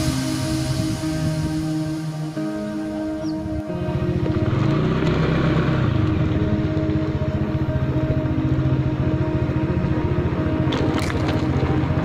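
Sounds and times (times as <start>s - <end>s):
motorcycle engine putter: 10.6s - 12.0s.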